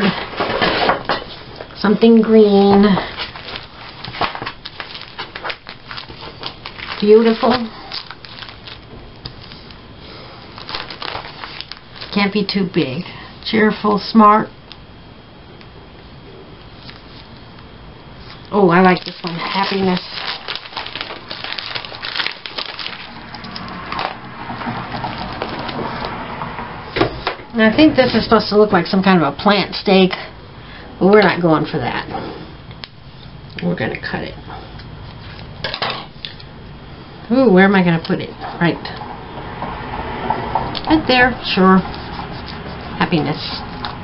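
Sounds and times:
plastic binder pages crinkling: 0:02.6 - 0:09.8, 0:10.4 - 0:12.4, 0:18.2 - 0:26.2.

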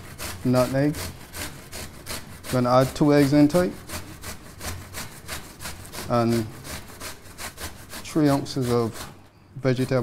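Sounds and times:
pumpkin scraping on metal grater: 0:00.0 - 0:10.0.

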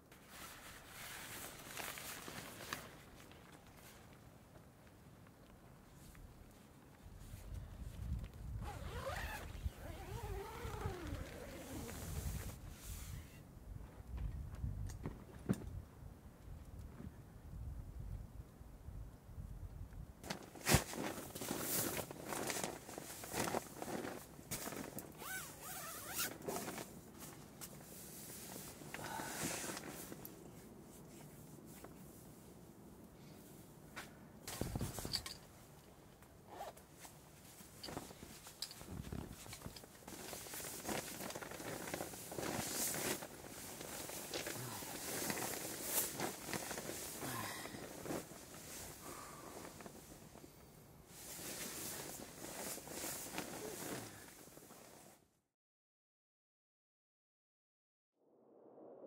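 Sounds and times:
zipper being pulled: 0:08.6 - 0:12.6, 0:25.2 - 0:26.9, 0:36.5 - 0:36.8.

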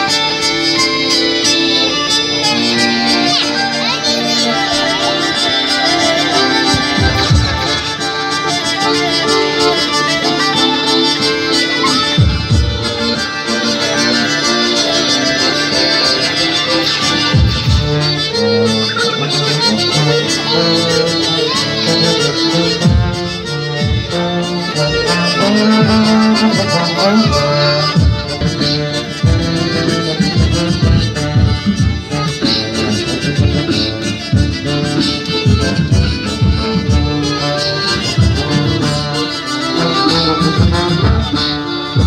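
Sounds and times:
street band playing: 0:00.0 - 0:42.0
deep drum beat: 0:33.0 - 0:37.3.

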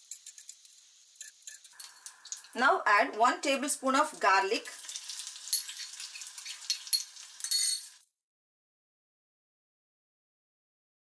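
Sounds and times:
metal spoon scraping pan: 0:00.0 - 0:02.6, 0:04.8 - 0:08.0
garlic sizzling in butter: 0:00.0 - 0:08.0.

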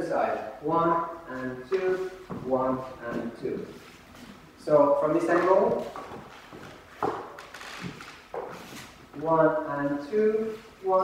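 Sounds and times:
dance shoes tapping wooden floor: 0:05.2 - 0:09.0.

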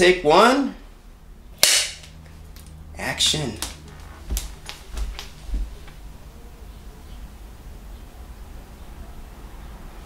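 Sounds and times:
clapperboard snapping shut: 0:01.6 - 0:02.1.

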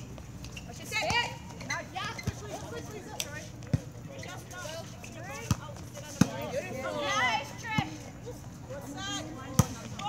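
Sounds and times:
faint players' voices: 0:00.4 - 0:10.0.

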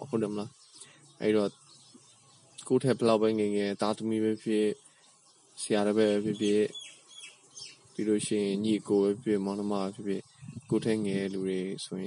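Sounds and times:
man reading aloud: 0:00.0 - 0:00.6, 0:01.2 - 0:01.6, 0:02.6 - 0:04.8, 0:05.6 - 0:06.8, 0:08.0 - 0:12.0
faint high chirps: 0:00.0 - 0:12.0.

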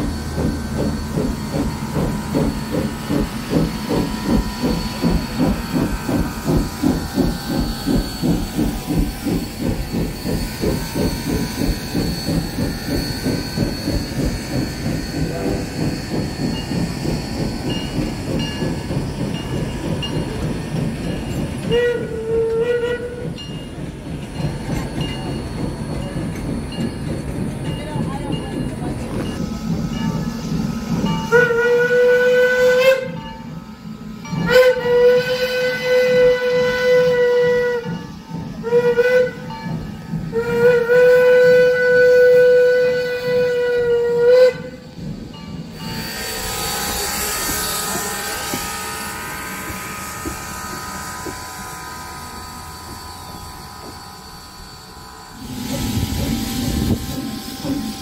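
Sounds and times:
steam hissing: 0:00.0 - 0:58.0
steam locomotive exhaust beating: 0:00.0 - 0:58.0
steam whistle blasts: 0:21.6 - 0:23.3, 0:31.2 - 0:33.2, 0:34.4 - 0:38.0, 0:38.6 - 0:39.5, 0:40.3 - 0:44.8.

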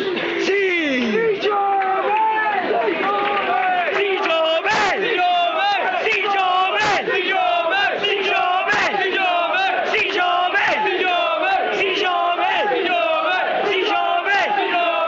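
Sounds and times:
football supporters chanting: 0:01.2 - 0:15.0.

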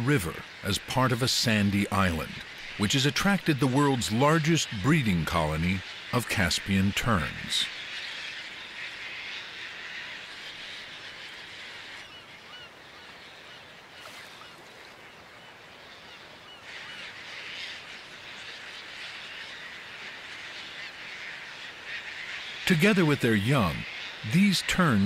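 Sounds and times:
terns calling: 0:00.0 - 0:25.0.

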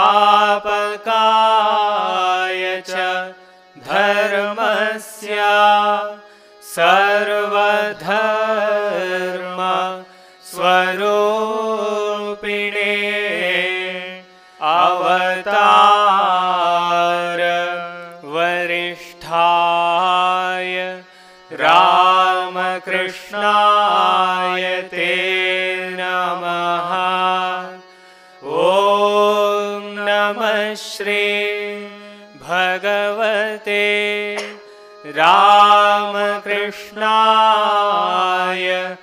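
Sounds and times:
person singing a hymn: 0:00.0 - 0:39.0.

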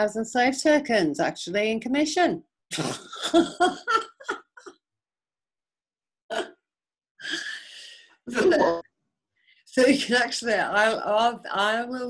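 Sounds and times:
person laughing: 0:02.8 - 0:04.8, 0:08.3 - 0:08.8.

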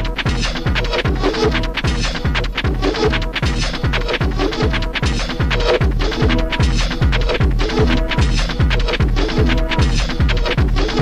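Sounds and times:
fast kick drum: 0:00.0 - 0:11.0
hi-hats: 0:00.0 - 0:11.0
repeating synth stabs: 0:00.0 - 0:11.0
techno music: 0:00.0 - 0:11.0.

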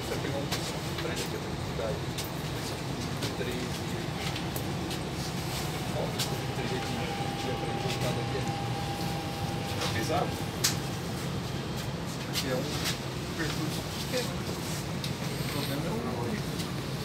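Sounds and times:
faint passenger voices: 0:00.0 - 0:17.0
train rumbling on track: 0:00.0 - 0:17.0
thin high tone: 0:06.0 - 0:11.0.

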